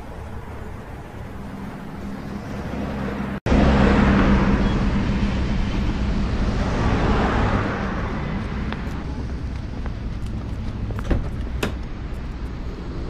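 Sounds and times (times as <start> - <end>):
low engine hum: 0.0 - 13.0
road traffic noise: 0.0 - 13.0.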